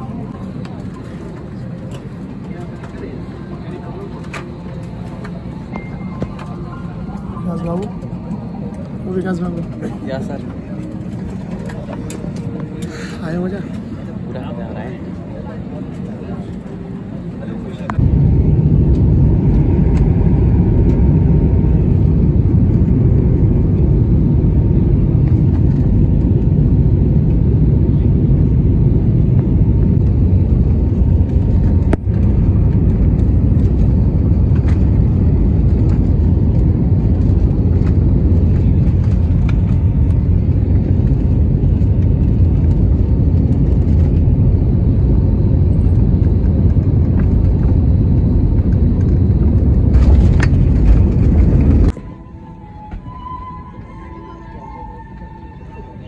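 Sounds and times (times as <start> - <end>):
airliner cabin engine rumble: 0.0 - 56.0.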